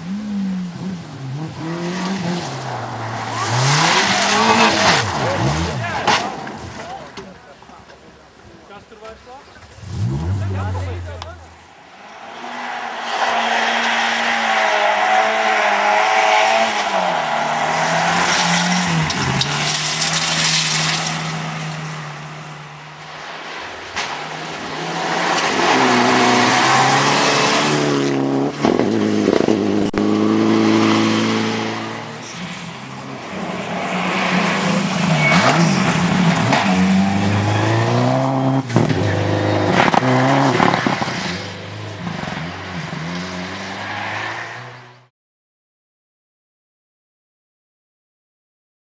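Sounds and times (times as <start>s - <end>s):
rally car engines revving: 0.0s - 8.0s, 9.0s - 45.1s
gravel and tyre noise: 0.0s - 45.1s.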